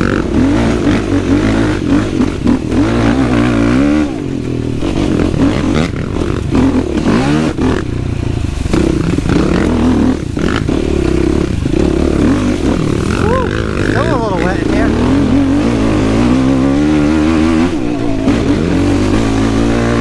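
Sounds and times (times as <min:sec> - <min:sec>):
quad engine revving: 0:00.0 - 0:20.0.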